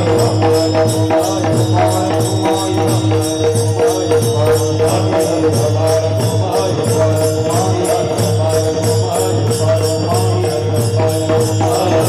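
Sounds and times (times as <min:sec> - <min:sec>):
hand cymbals struck: 0:00.0 - 0:12.0.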